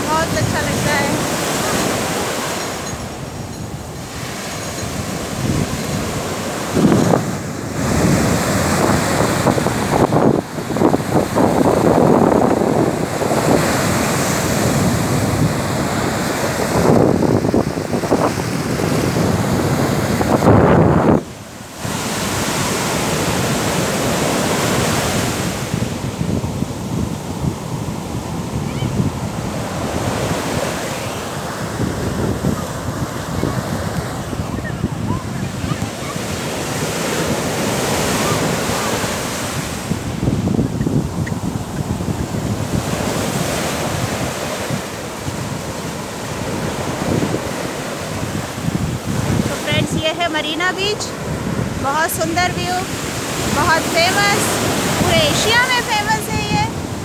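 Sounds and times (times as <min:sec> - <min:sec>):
surf breaking on sand: 0:00.0 - 0:57.0
wind buffeting microphone: 0:00.0 - 0:57.0.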